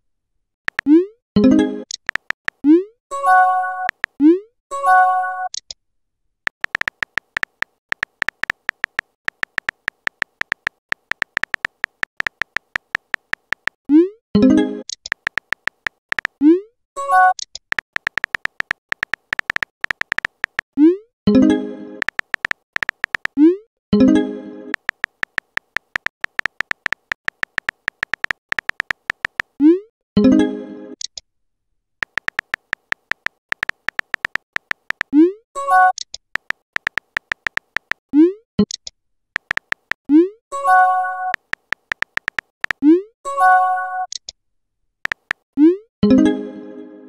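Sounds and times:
keyboard typing clicks: 0.7 - 1.0, 1.8 - 2.8, 3.8 - 4.2, 6.5 - 13.8, 14.8 - 16.4, 17.4 - 20.8, 22.0 - 23.5, 24.7 - 29.6, 32.0 - 35.2, 35.9 - 38.0, 38.6 - 40.1, 41.2 - 43.0, 45.0 - 45.4.

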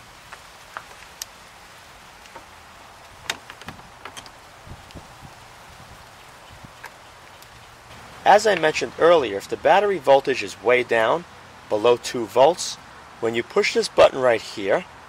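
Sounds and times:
faint outdoor hiss: 0.0 - 15.0.

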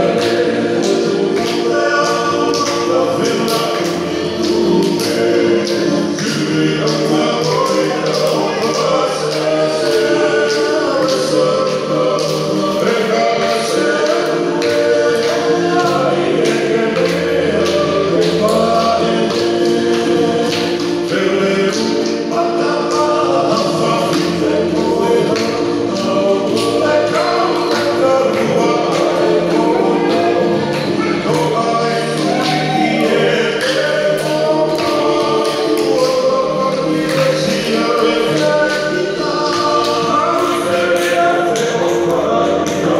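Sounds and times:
group singing in harmony: 0.0 - 42.9
sharp rhythmic beats: 0.0 - 42.9.

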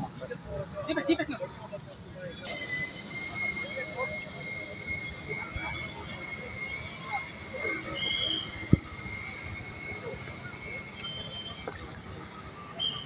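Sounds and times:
faint voices: 0.0 - 13.0
drone propellers whining: 1.9 - 13.0.

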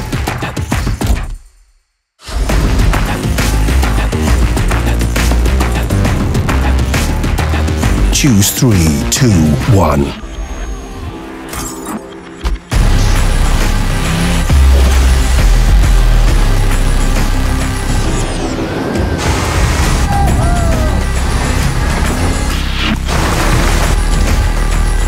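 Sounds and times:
film music: 2.2 - 25.0.

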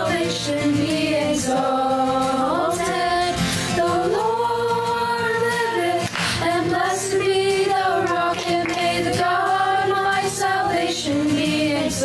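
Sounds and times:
young voices choir singing: 0.0 - 12.0.

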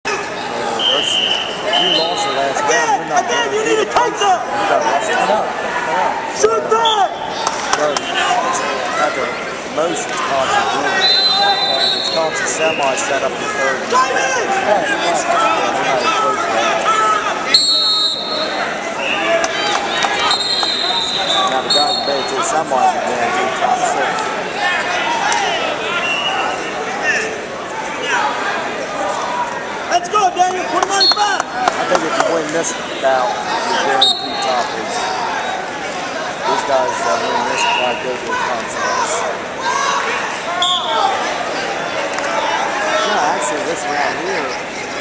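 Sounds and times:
echoing crowd chatter: 0.0 - 45.0
people talking and shouting: 0.0 - 45.0
referee's whistle: 0.7 - 2.4, 10.9 - 13.0, 17.5 - 19.3, 20.2 - 22.4, 26.0 - 26.7, 30.9 - 31.3, 33.9 - 34.6, 40.6 - 41.1.

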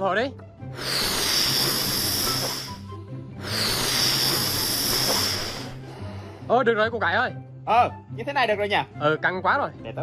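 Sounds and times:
background music: 0.0 - 10.0
person blowing into balloon: 0.7 - 6.5.

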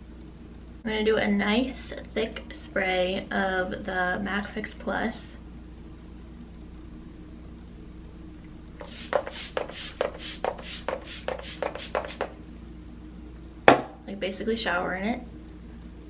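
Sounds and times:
spray bottle spritzes: 8.8 - 12.2.

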